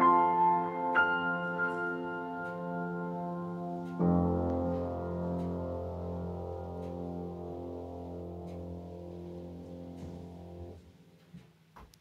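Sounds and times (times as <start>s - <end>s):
piano chord sustaining: 0.0s - 11.2s.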